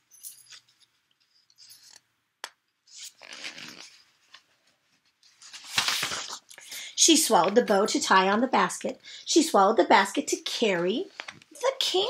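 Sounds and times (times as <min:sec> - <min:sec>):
paper pages rustling: 0:02.9 - 0:07.8.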